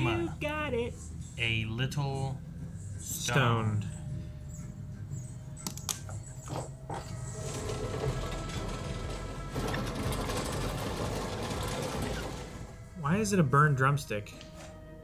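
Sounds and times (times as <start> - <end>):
mechanical rattle and whir: 6.2 - 13.0.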